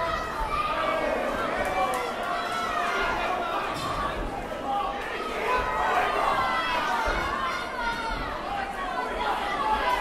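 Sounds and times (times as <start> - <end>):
crowd chattering and calling out: 0.0 - 10.0.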